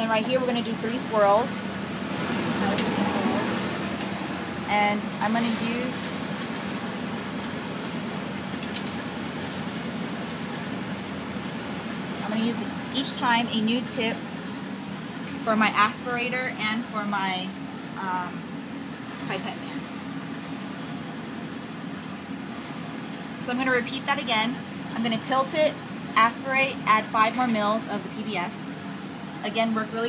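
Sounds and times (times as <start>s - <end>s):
cabinet blower humming: 0.0s - 14.5s
biosafety cabinet blower airflow: 0.0s - 30.0s.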